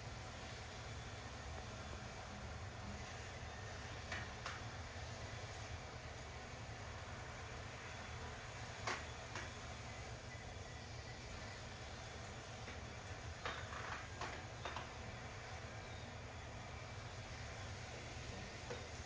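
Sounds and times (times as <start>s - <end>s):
sprinkler water spraying hiss: 0.0s - 19.0s.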